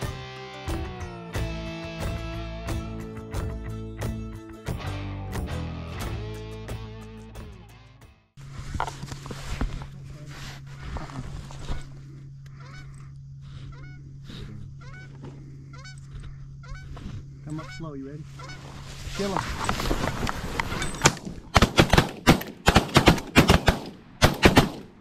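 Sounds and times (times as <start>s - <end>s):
guitar music: 0.0s - 8.2s
steady low hum: 8.4s - 25.0s
geese honking: 11.6s - 19.0s.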